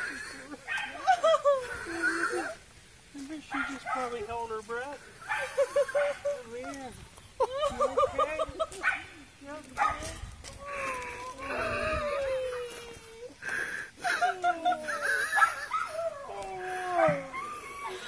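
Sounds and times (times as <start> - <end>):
people laughing: 0.0 - 2.6, 5.4 - 6.8, 7.4 - 8.8, 13.6 - 18.0
people talking: 5.8 - 13.4, 14.0 - 17.8.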